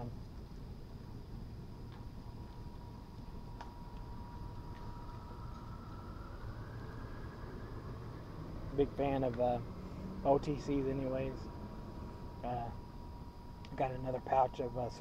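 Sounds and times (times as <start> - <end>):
faint thin whine: 0.0 - 15.0
steady low rumble: 0.0 - 15.0.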